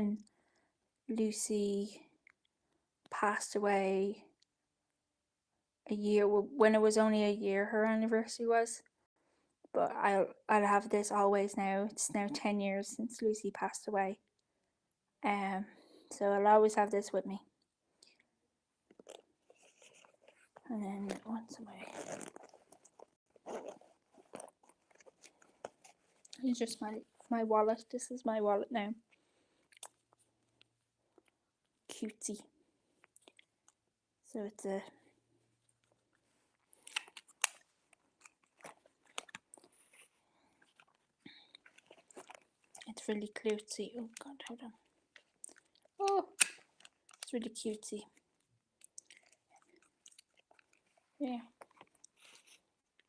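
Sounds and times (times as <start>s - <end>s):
wallet clicks and rustles: 18.9s - 26.3s, 36.7s - 43.0s.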